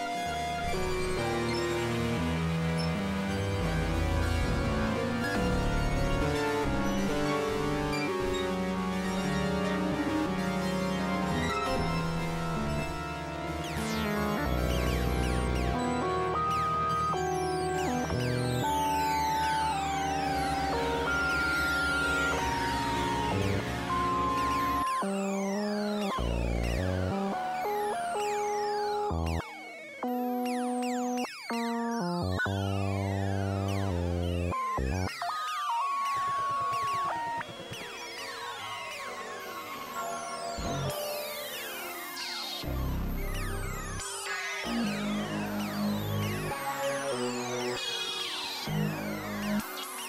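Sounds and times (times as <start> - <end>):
experimental synthesizer music: 0.0 - 50.0.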